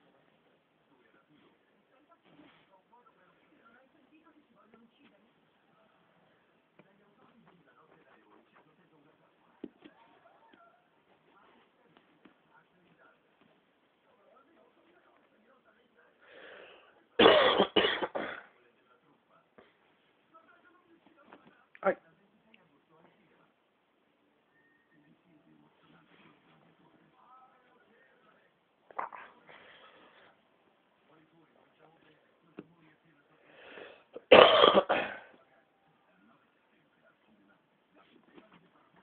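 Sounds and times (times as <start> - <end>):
soft rustle: 0.0 - 15.8
loud coughs: 17.2 - 18.5, 34.2 - 35.3.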